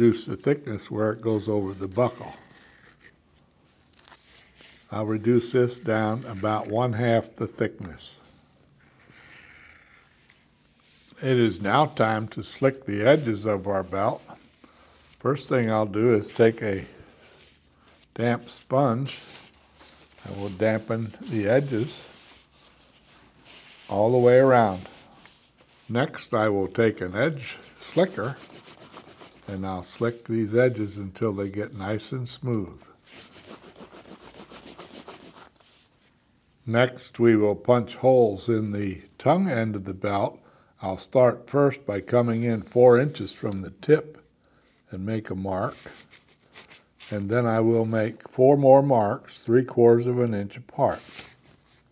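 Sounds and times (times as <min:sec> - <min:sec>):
edge slicker rubbing leather: 0:01.1 - 0:03.2, 0:08.8 - 0:30.4, 0:33.0 - 0:36.1
knife scraping leather: 0:01.2 - 0:03.2, 0:03.8 - 0:06.7, 0:08.8 - 0:11.2, 0:19.1 - 0:25.9.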